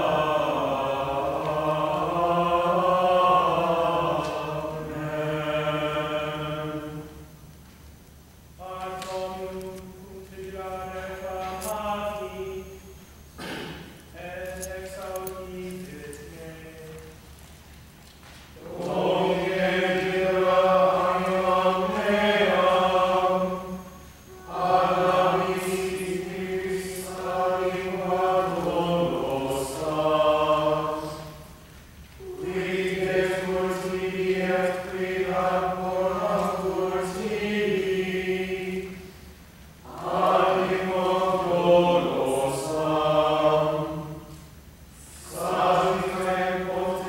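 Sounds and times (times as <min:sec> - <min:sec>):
choir chanting in unison: 0:00.0 - 0:07.4, 0:08.6 - 0:17.0, 0:18.6 - 0:31.6, 0:32.2 - 0:47.0.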